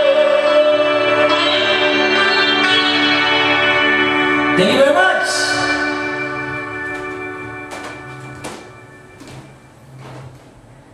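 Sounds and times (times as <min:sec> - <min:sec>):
faint knocks: 0:06.8 - 0:10.7.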